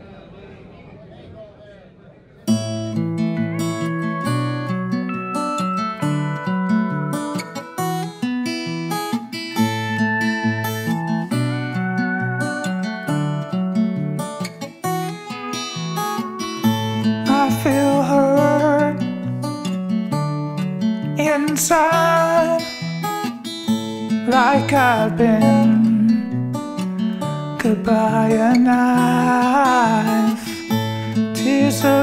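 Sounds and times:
acoustic guitar country song: 2.5 - 32.0.

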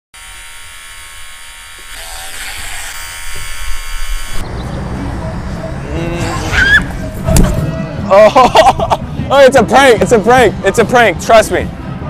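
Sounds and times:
electric clipper buzz from phone speaker: 0.2 - 4.4.

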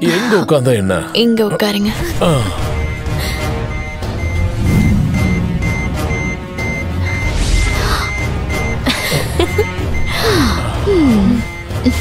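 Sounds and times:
countdown timer beeping: 1.2 - 12.0
low droning music: 1.5 - 12.0.

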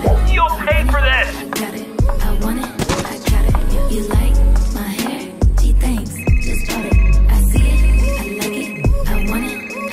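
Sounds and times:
smartphone ringtone pulses: 6.2 - 9.9.

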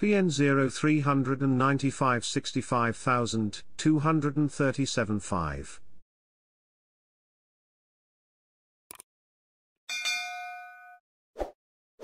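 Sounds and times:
notification bell ding: 9.9 - 11.0.

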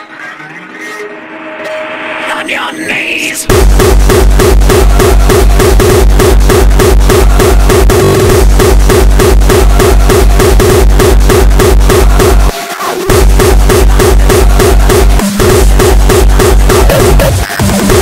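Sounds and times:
hardcore electronic music: 0.0 - 18.0
fast kick drum: 3.5 - 12.5, 13.1 - 18.0
pulsing synth line: 3.5 - 18.0.

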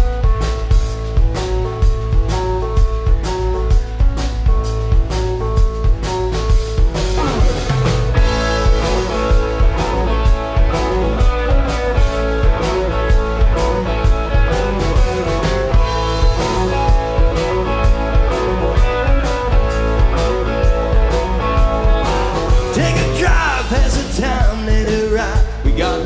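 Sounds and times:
drum kit steady beat: 0.0 - 26.0
electric guitars: 0.0 - 26.0.

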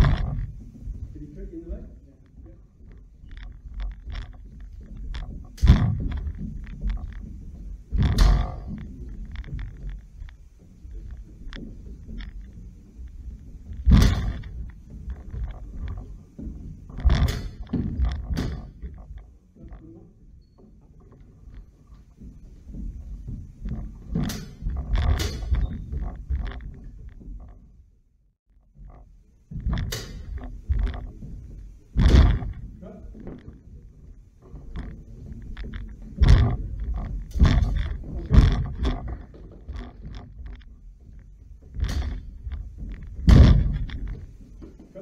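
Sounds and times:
feet stamping on wooden floor: 2.5 - 19.4, 21.5 - 27.4, 29.4 - 45.0.

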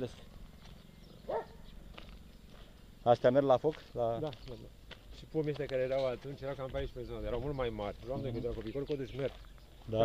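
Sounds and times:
people talking: 0.0 - 0.2, 3.0 - 10.0
dog barking: 1.3 - 1.7.

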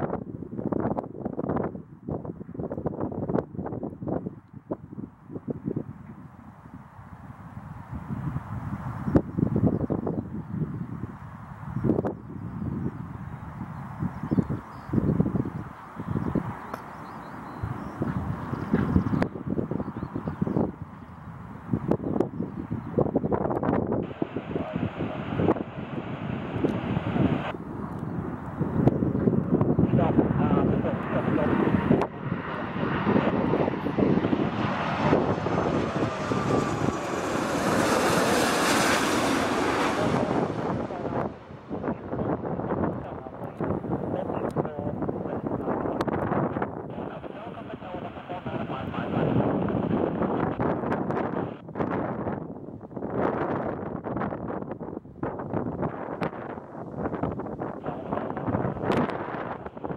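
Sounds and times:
wind buffeting microphone: 0.0 - 59.9
jet engine noise with high whine: 2.3 - 51.7, 55.9 - 59.9.

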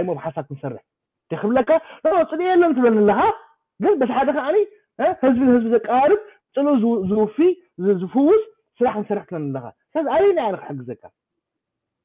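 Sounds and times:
man speaking over video call: 0.0 - 11.3.

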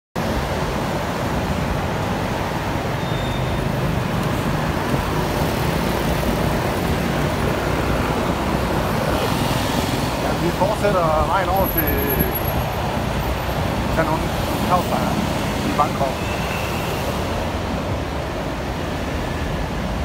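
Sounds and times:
engine and tyre rumble: 0.2 - 20.0
surrounding road traffic: 0.2 - 20.0.

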